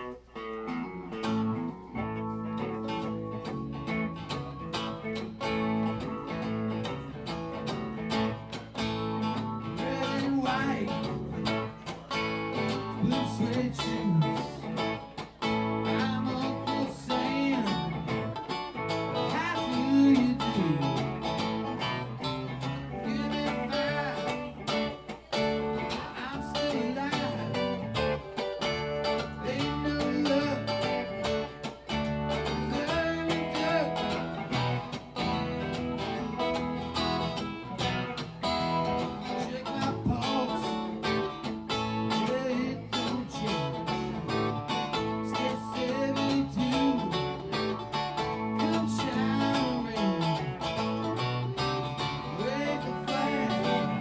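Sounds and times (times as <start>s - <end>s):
electric guitar: 0.0s - 54.0s
strummed acoustic guitar: 0.0s - 54.0s.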